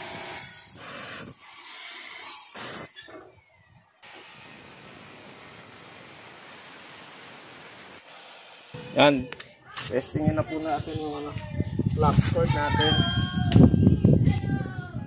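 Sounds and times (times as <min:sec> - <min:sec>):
cut-off saw grinding steel: 0:00.0 - 0:09.2.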